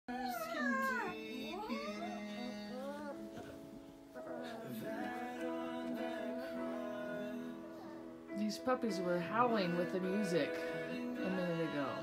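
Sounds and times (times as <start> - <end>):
puppy howling: 0.1 - 3.3
hymn music with held chords: 0.1 - 12.0.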